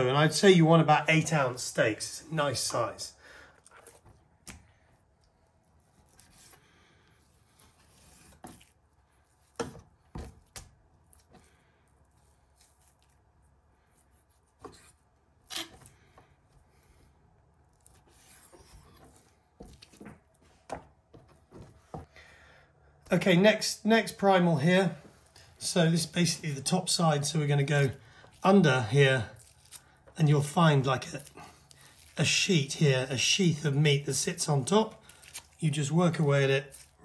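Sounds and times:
knife rubbing through meat: 0:05.8 - 0:06.6.

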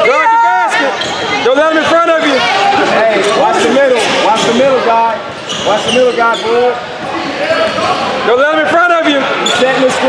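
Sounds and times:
people calling out in gym: 0:00.0 - 0:10.0.

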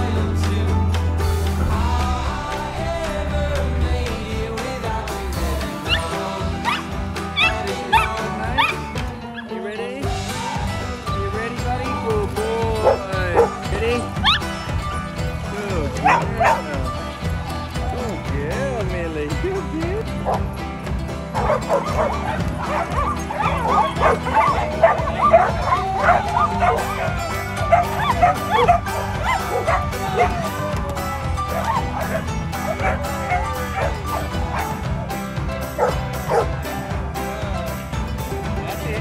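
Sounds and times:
background music with steady beat: 0:00.0 - 0:39.0
dogs barking and whining: 0:05.8 - 0:09.6, 0:12.8 - 0:14.7, 0:16.0 - 0:16.8, 0:21.3 - 0:36.6.

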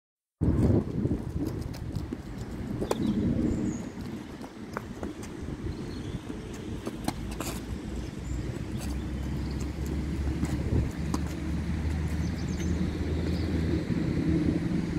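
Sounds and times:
steady low rumble: 0:00.4 - 0:14.9.

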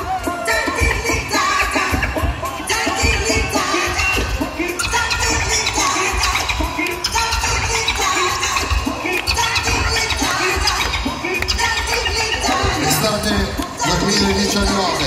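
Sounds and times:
live band playing funk groove: 0:00.0 - 0:15.0.

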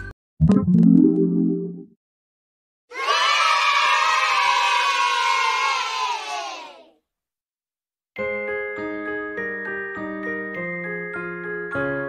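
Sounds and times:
children cheering: 0:02.9 - 0:06.9.

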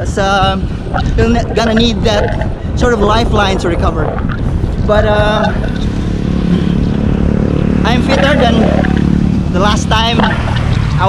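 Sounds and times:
wind rumbling on microphone: 0:00.0 - 0:11.0
motorcycle engine running: 0:04.3 - 0:11.0.

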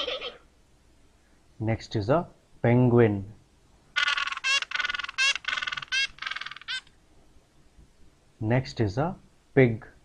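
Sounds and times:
high-pitched penguin calls: 0:00.0 - 0:00.4, 0:04.0 - 0:06.9.

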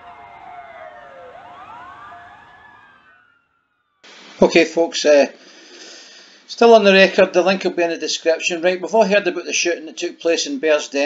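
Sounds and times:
gliding siren-like electronic tones: 0:00.0 - 0:04.2.

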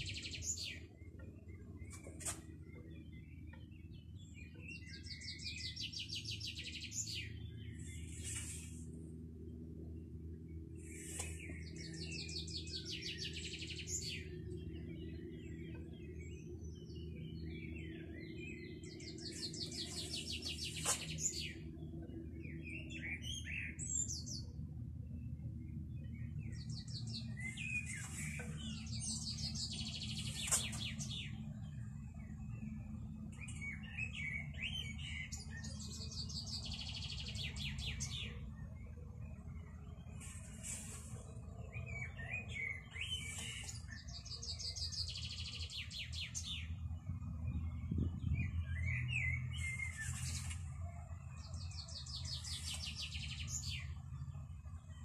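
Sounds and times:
songbird trilling and twittering: 0:00.0 - 0:08.2, 0:10.5 - 0:24.6, 0:25.2 - 0:54.3
low background rumble: 0:00.0 - 0:55.0.

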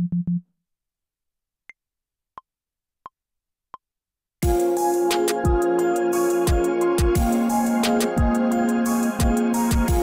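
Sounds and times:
low synth bass notes: 0:04.4 - 0:10.0.

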